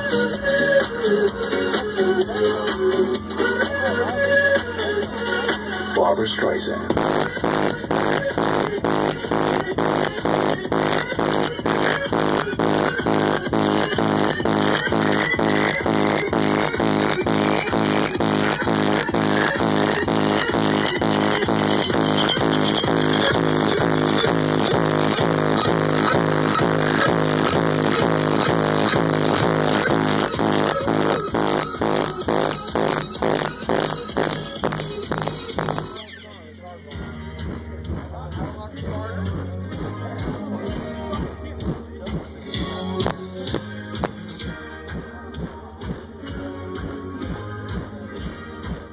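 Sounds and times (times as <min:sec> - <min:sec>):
loud electronic dance music: 0:00.0 - 0:48.9.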